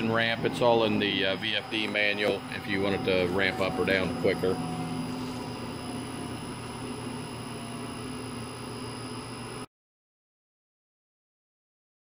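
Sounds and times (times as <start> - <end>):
centrifuge machine hum: 0.0 - 9.7
faint high whine: 0.0 - 9.7.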